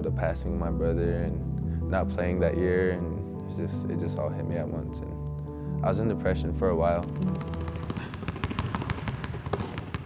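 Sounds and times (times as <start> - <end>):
basketball dribbling on hardwood: 7.1 - 10.0.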